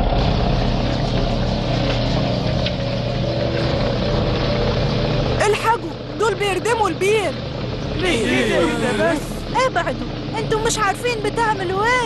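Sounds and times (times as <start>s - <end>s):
truck engine running: 0.0s - 12.0s.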